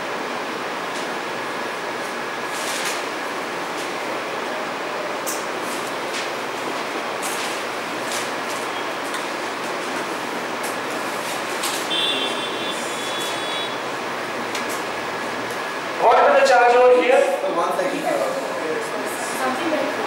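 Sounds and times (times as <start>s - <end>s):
room noise hiss: 0.0s - 20.0s.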